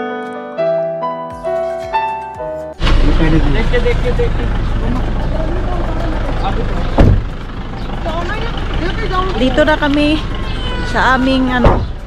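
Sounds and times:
piano music: 0.0 - 2.8
vehicle rumbling: 2.8 - 12.0
loud thump: 7.0 - 7.3, 11.6 - 12.0.

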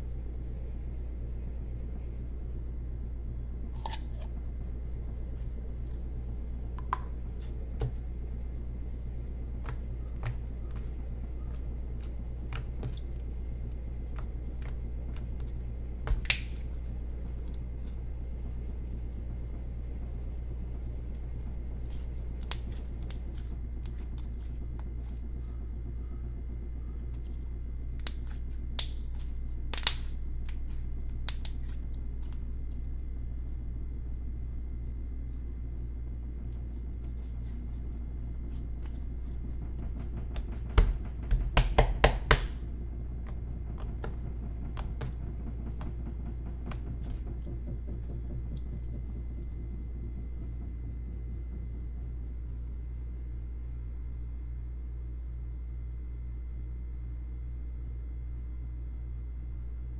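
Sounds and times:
low background hum: 0.0 - 59.9.

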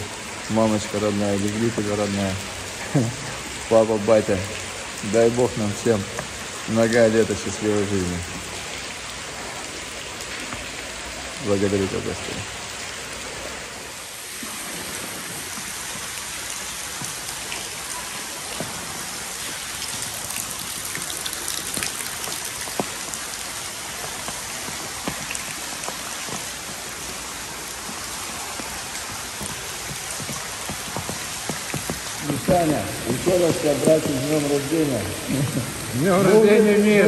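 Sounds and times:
water dripping in a cave: 0.0 - 37.0.

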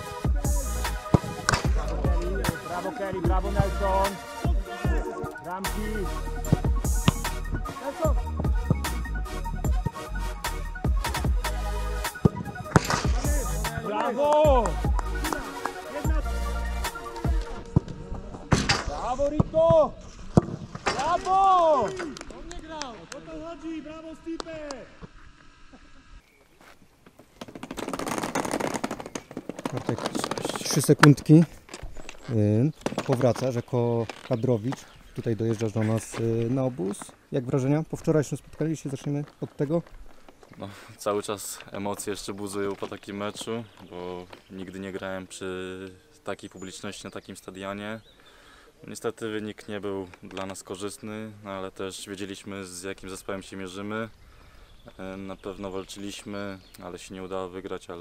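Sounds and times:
hip-hop track with heavy bass: 0.0 - 17.8
football players shouting: 1.6 - 6.0, 13.1 - 17.8, 21.0 - 24.7
wheeled suitcase rolling over paving: 27.0 - 34.7.

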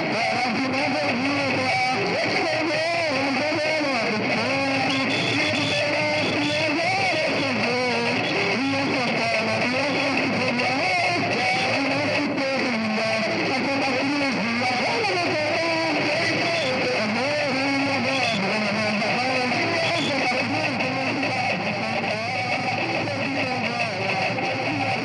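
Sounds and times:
guitar with wavering melody: 0.0 - 25.0.

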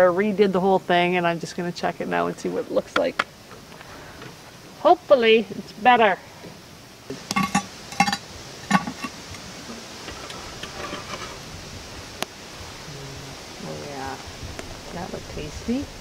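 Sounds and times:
metal lid clanking: 7.2 - 9.4, 10.1 - 11.4.

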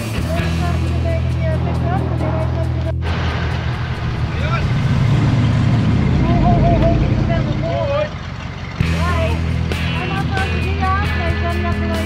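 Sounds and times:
vehicle engine idling: 0.0 - 12.0
people talking: 0.2 - 2.9, 4.3 - 4.8, 6.1 - 8.2, 8.8 - 12.0
steady music-like tones: 0.6 - 12.0.

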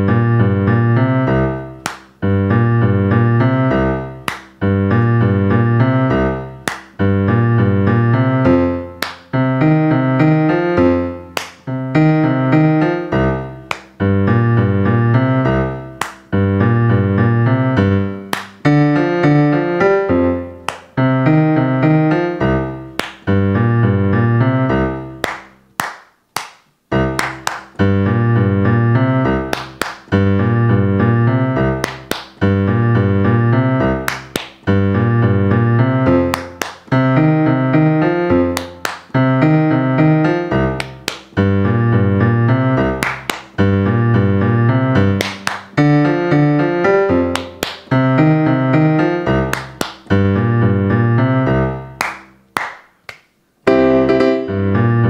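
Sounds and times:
boogie-woogie piano: 0.0 - 55.0
hand claps: 1.8 - 2.1, 4.2 - 4.6, 6.6 - 7.0, 9.0 - 9.3, 11.3 - 11.6, 13.6 - 14.0, 16.0 - 16.3, 18.3 - 18.6, 20.6 - 20.9, 23.0 - 23.2, 25.2 - 27.8, 29.5 - 30.1, 31.8 - 32.4, 34.1 - 34.6, 36.2 - 37.0, 38.5 - 39.2, 40.8 - 41.4, 43.0 - 43.6, 45.0 - 45.8, 47.2 - 48.0, 49.4 - 50.2, 52.0 - 53.4.

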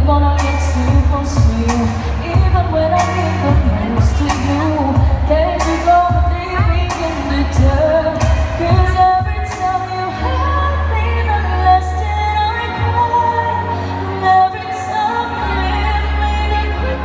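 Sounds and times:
bass line: 0.0 - 17.0
woman singing a pop song: 0.0 - 17.0
steady drum beat: 0.9 - 9.8.

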